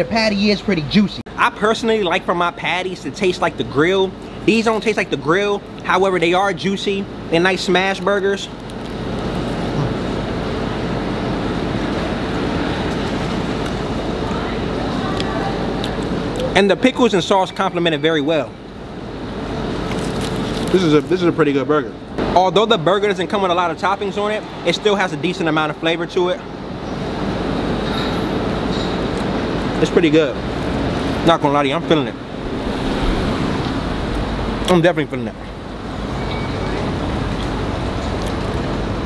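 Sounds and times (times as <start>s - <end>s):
street traffic rumble: 0.0s - 39.0s
large vehicle rumbling past: 32.2s - 34.7s.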